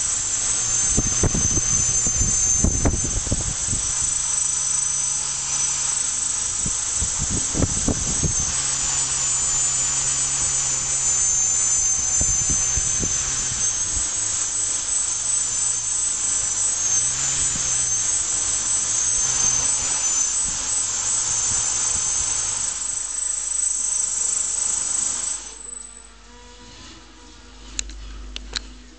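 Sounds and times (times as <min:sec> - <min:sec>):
quadcopter motors whining: 0:00.0 - 0:28.9.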